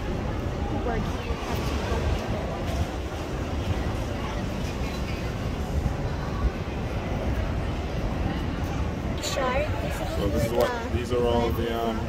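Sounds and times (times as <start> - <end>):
distant people talking: 0.0 - 12.0.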